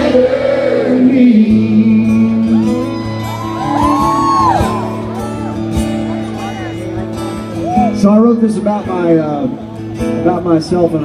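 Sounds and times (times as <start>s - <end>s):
live band with acoustic guitar: 0.0s - 11.0s
crowd whooping and shouting: 2.4s - 8.1s.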